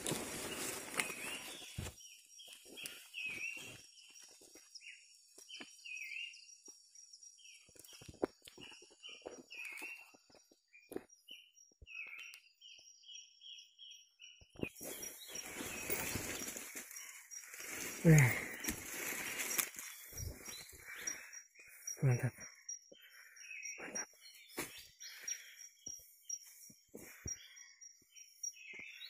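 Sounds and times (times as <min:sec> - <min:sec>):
rustling of leaves and brush: 0:00.0 - 0:04.6, 0:14.7 - 0:21.3
bird chirping: 0:00.0 - 0:29.0.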